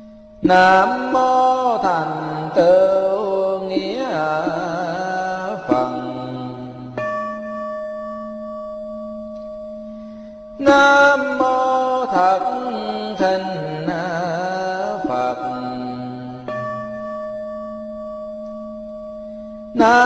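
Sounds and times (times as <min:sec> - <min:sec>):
person chanting: 0:00.4 - 0:07.2, 0:10.6 - 0:17.1, 0:19.8 - 0:20.0
bowl bell ringing: 0:06.4 - 0:10.6, 0:16.2 - 0:19.8.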